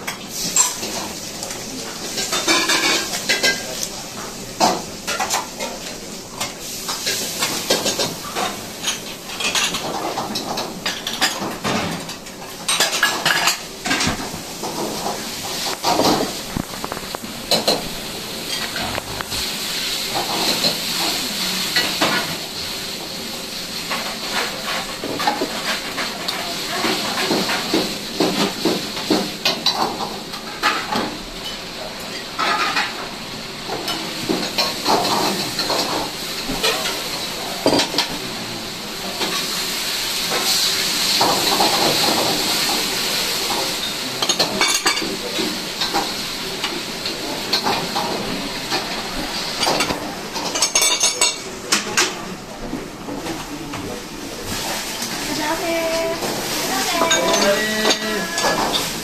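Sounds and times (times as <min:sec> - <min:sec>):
food sizzling in a wok: 0:00.0 - 0:59.0
pots and bowls clattering: 0:00.1 - 0:23.1, 0:23.8 - 0:38.2, 0:40.2 - 0:53.9, 0:56.2 - 0:59.0.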